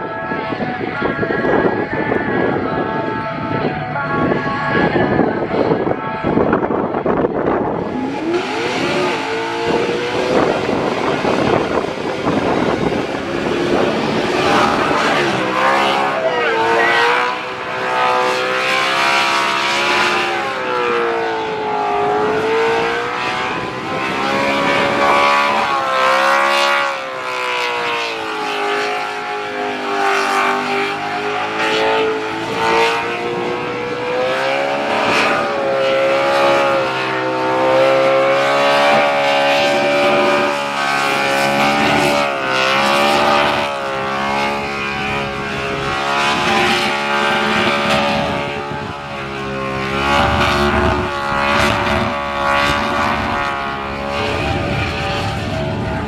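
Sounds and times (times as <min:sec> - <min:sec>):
car engine at high revs: 0:00.0 - 0:56.0.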